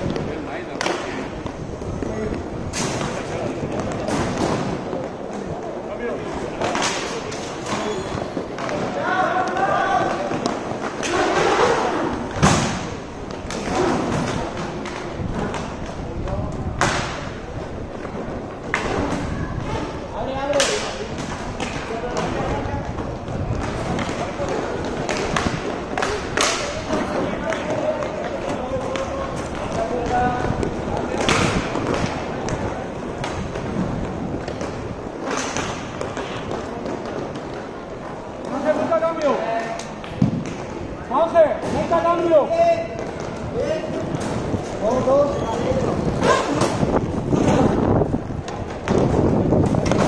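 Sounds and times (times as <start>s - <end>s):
inline skates rolling: 0.0s - 50.0s
players shouting: 8.7s - 12.2s.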